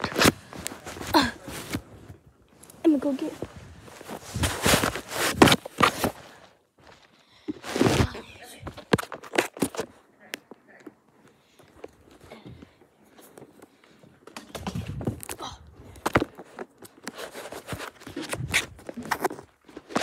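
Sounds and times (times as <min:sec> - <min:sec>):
fabric rustling against microphone: 0:00.0 - 0:10.2, 0:11.1 - 0:20.0.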